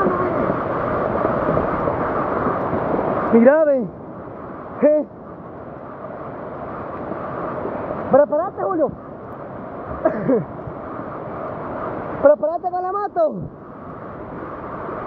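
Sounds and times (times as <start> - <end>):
river water rushing: 0.0 - 15.0.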